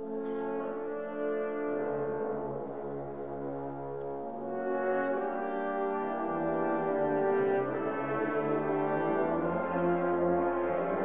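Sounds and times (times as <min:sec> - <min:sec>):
french horns playing chord: 0:00.0 - 0:11.0.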